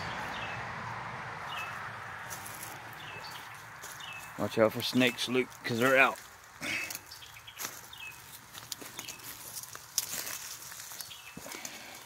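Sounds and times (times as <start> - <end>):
footsteps crunching dry leaves: 1.5 - 12.0
twigs snapping: 8.5 - 11.8.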